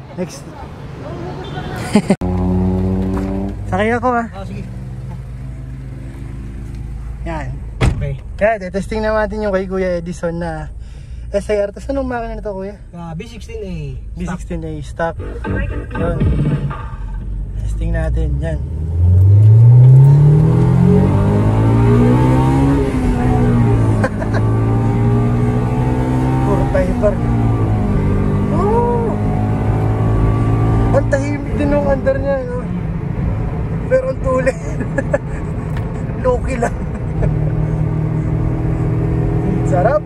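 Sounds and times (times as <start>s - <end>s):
road noise: 0.0s - 40.0s
car engine accelerating: 0.5s - 10.8s, 11.5s - 40.0s.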